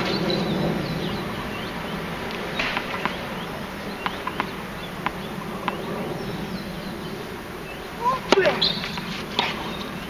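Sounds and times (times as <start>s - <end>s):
steady background hum: 0.0s - 10.0s
tennis ball bouncing on hard court: 2.3s - 5.9s, 8.2s - 9.9s.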